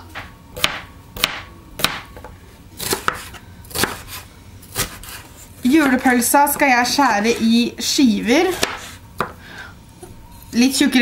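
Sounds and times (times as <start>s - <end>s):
knife chopping on plastic board: 0.2s - 5.2s, 8.5s - 9.4s.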